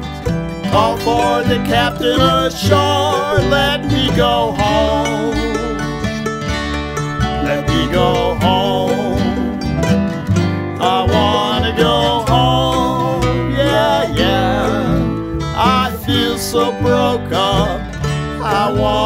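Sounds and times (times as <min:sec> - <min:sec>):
acoustic string band playing: 0:00.0 - 0:19.0.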